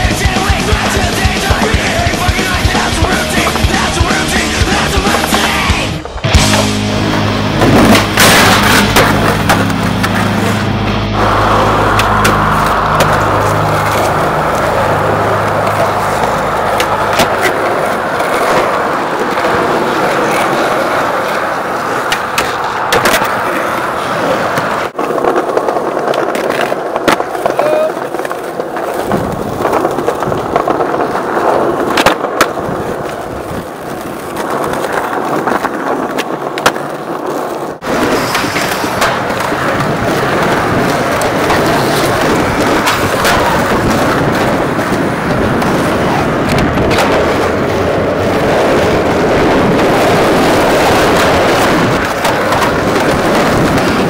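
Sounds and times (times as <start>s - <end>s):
skateboard wheels rolling on concrete: 0.0s - 54.0s
skateboard popping and landing clacks: 2.2s - 6.6s, 7.6s - 10.5s, 15.6s - 47.8s, 49.8s - 54.0s.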